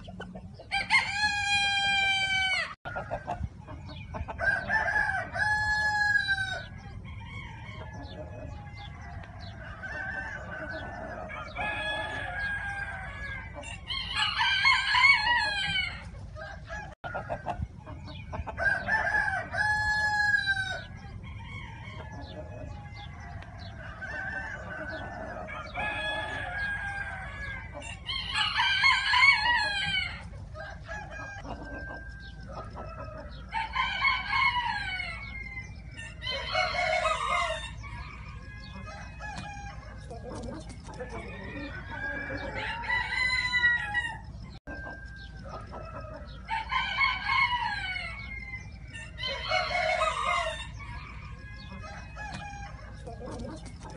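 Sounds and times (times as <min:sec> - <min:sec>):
chickens clucking: 0:00.0 - 0:53.9
roosters crowing: 0:00.0 - 0:53.9.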